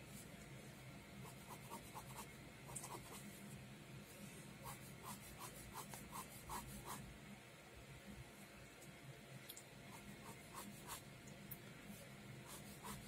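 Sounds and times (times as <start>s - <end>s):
pen scratching on paper: 1.2s - 3.2s, 4.6s - 7.0s, 9.9s - 11.0s, 12.4s - 13.0s.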